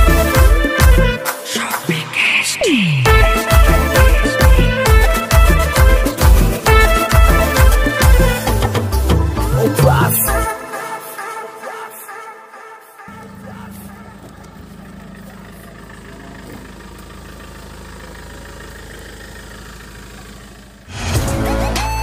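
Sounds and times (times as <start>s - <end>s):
loud music with deep bass: 0.0s - 12.2s
car engine running: 13.1s - 21.0s.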